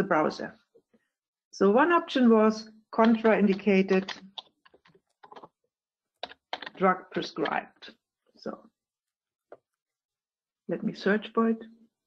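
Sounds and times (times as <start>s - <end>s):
keyboard typing: 3.0s - 5.6s, 6.2s - 7.6s.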